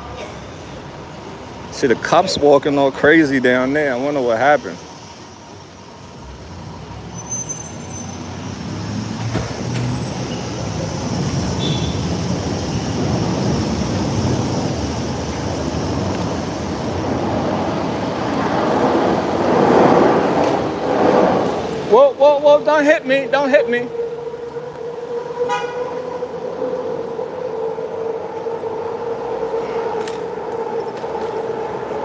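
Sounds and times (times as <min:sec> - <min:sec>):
elevated train rumbling: 0:00.0 - 0:32.0
train wheel squeals: 0:04.6 - 0:06.1, 0:06.9 - 0:14.2.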